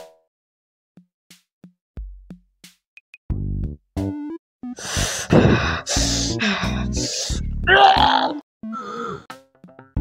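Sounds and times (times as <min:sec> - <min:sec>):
man groaning in pain: 0:07.7 - 0:09.2.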